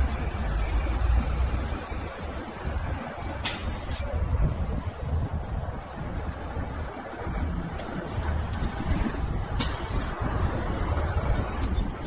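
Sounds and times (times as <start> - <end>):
street traffic rumble: 0.0 - 12.0
brief hiss: 3.4 - 4.1.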